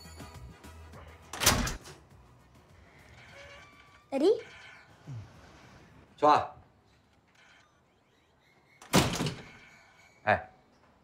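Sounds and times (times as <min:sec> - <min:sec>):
background music: 0:00.0 - 0:05.0.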